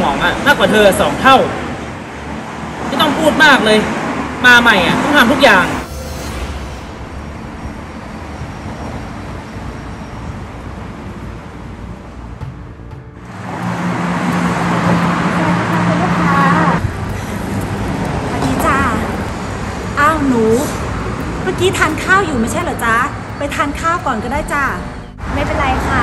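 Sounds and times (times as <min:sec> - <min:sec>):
road traffic: 0:00.0 - 0:26.0.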